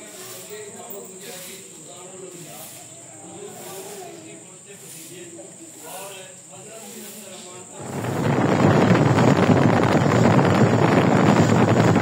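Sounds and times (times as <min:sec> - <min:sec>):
faint distant voices: 0:00.0 - 0:12.0
wind buffeting microphone: 0:07.7 - 0:12.0.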